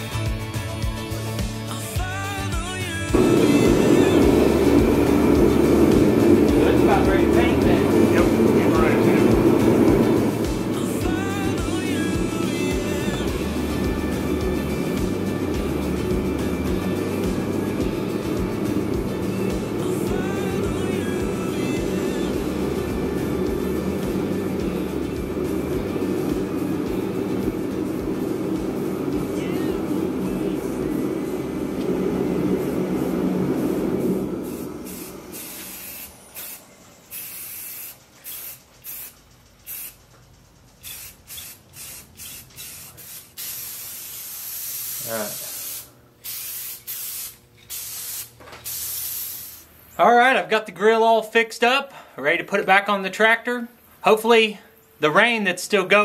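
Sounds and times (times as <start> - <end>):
pop song playing: 0.0 - 34.3
spray paint can hissing: 33.6 - 49.8.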